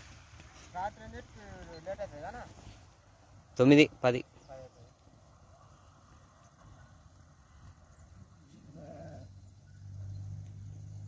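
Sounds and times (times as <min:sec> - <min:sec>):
sheep bleating: 0:08.5 - 0:09.3.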